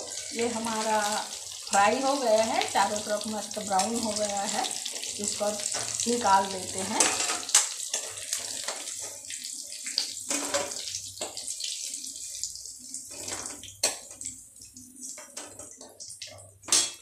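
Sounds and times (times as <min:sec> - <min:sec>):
hot oil sizzling: 0:00.0 - 0:17.0
metal spoon scraping a pan: 0:07.0 - 0:09.2.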